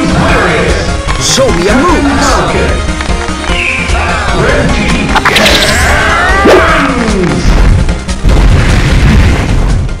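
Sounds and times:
music: 0.0s - 10.0s
deep rumbling explosion boom: 7.5s - 10.0s.

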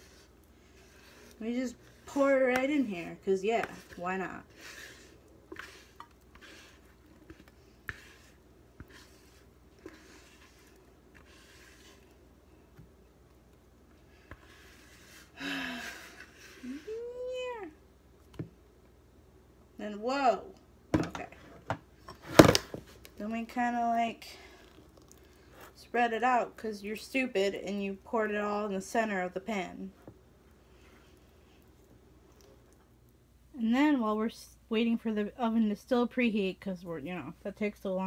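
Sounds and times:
spatula scraping batter from bowl: 0.0s - 12.2s, 14.2s - 16.9s.

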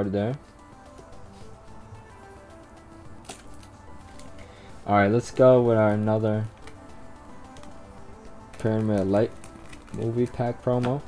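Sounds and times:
quiet background music: 0.0s - 11.0s
cards and foil pack handling: 3.1s - 4.6s, 7.4s - 11.0s.

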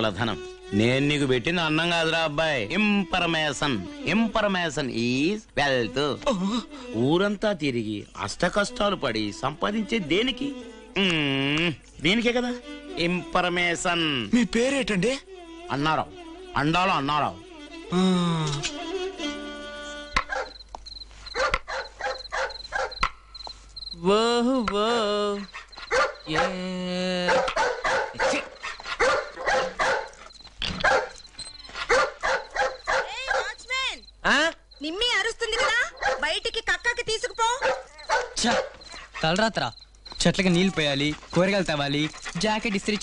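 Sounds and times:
insects chirping: 0.0s - 43.0s
dog barking: 20.2s - 20.6s, 21.3s - 23.1s, 25.6s - 26.6s, 27.3s - 31.2s, 31.8s - 33.6s, 35.4s - 36.4s, 37.4s - 39.4s
sharp taps: 20.2s - 23.6s.

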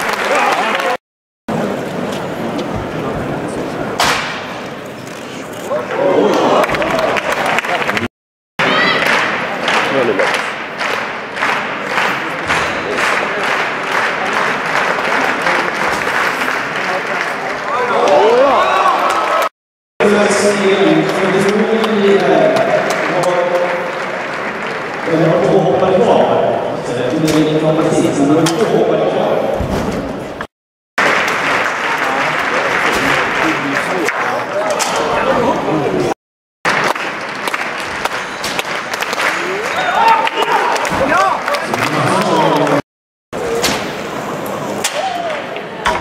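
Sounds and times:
spectators clapping: 0.0s - 1.0s, 6.2s - 19.5s, 20.5s - 26.1s, 31.0s - 34.7s, 36.6s - 42.8s
crowd voices: 0.0s - 29.6s, 31.1s - 36.2s, 36.8s - 42.8s, 43.4s - 46.0s
sharp crack: 4.0s - 4.6s.

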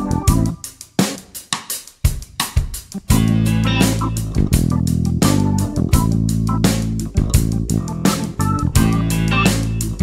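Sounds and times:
bass drum hits: 3.1s - 10.0s.

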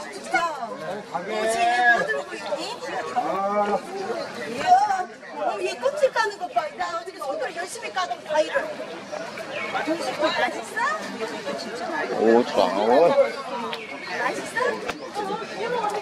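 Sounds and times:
people chattering: 0.0s - 16.0s.

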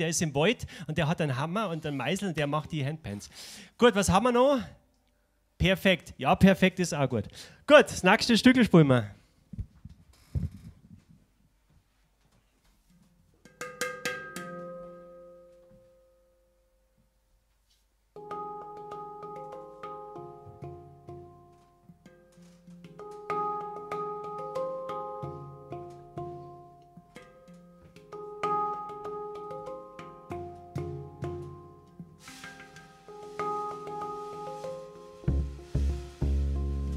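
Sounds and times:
handpan notes: 13.4s - 15.6s, 18.2s - 36.9s.

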